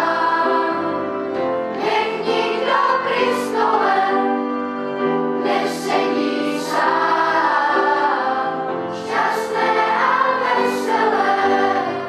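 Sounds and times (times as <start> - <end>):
children's choir singing: 0.0 - 12.0.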